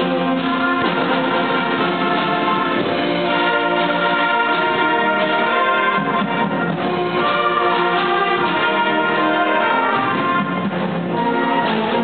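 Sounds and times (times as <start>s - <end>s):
concert band playing held chords: 0.0s - 12.0s.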